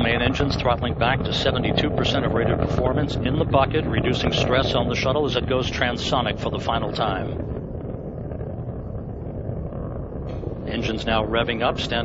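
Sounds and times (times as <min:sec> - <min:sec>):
rocket engines rumbling: 0:00.0 - 0:12.0.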